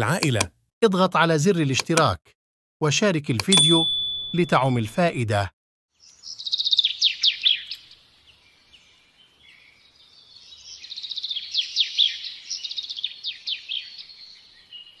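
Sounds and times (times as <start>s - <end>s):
bird trilling chirps: 6.0s - 8.0s.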